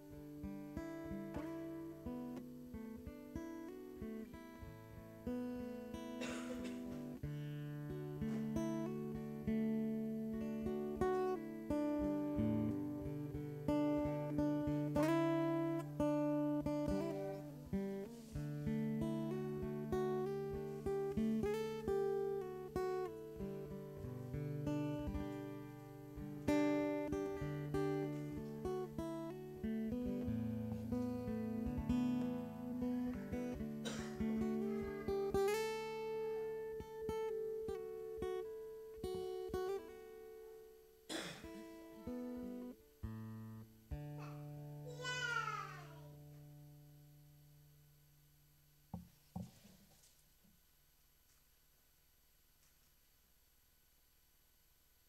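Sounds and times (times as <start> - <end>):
acoustic guitar chords: 0.0 - 50.0.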